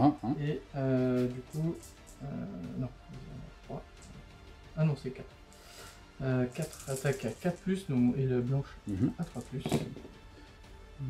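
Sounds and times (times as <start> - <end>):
dice clattering on mat: 6.6 - 7.4.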